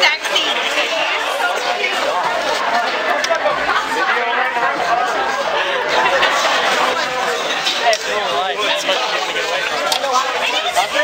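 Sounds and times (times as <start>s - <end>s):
party crowd chatter: 0.0s - 11.0s.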